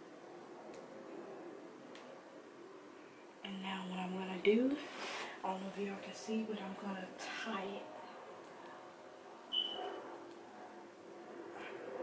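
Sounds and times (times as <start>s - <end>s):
high thin squeak: 9.5s - 10.0s.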